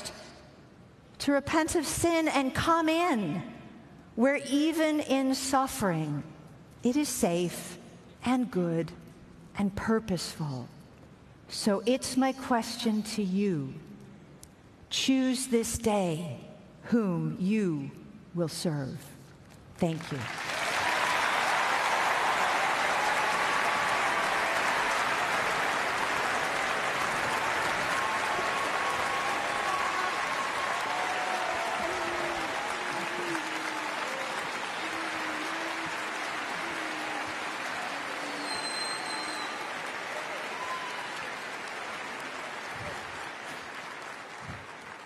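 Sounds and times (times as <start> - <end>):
audience applauding: 20.0 - 45.0.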